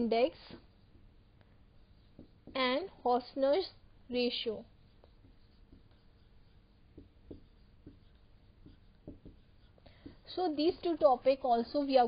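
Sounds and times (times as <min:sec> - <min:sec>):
stylus tapping and scratching on screen: 0:00.0 - 0:12.0.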